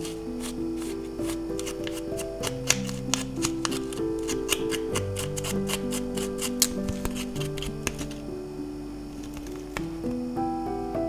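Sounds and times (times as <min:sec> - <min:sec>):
scissors snipping yarn: 0:00.0 - 0:08.2
background music: 0:00.0 - 0:11.0.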